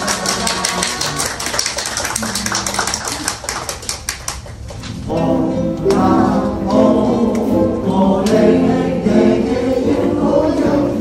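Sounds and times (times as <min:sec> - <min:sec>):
audience clapping: 0:00.0 - 0:05.0.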